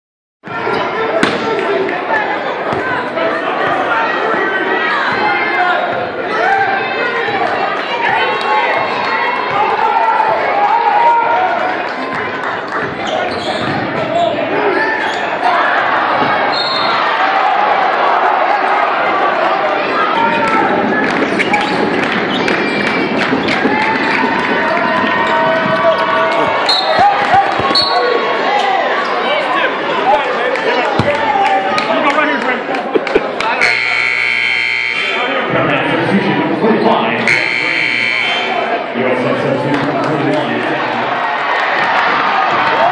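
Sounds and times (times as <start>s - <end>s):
crowd talking in echoing hall: 0.4s - 42.9s
arena buzzer: 33.6s - 35.3s, 37.2s - 38.7s.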